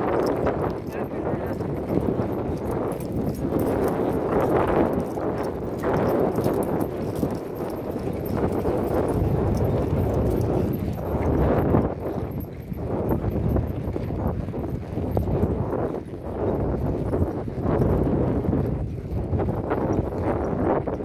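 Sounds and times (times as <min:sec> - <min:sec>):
horse hooves clip-clopping: 0:00.0 - 0:21.0
wind buffeting microphone: 0:00.0 - 0:21.0.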